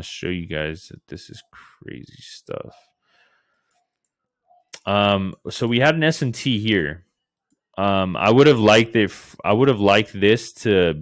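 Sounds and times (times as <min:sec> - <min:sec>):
man saying um: 0:00.0 - 0:02.7, 0:04.8 - 0:07.0.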